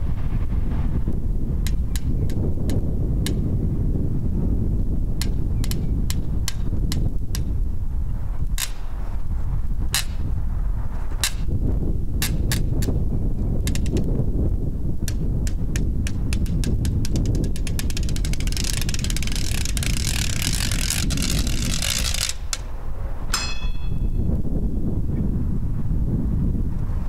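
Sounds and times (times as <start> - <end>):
wind rumble on microphone: 0.0 - 27.0.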